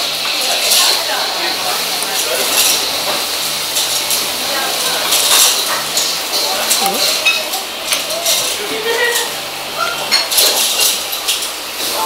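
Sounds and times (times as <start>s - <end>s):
hubbub of voices: 0.0s - 11.2s
dishes and cutlery clinking: 0.3s - 12.0s.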